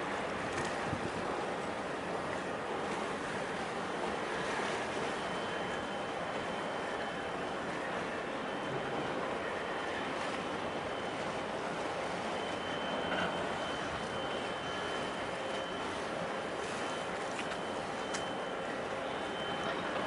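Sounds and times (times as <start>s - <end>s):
rushing outdoor background noise: 0.0s - 20.0s
faint thin high tone: 16.9s - 20.0s.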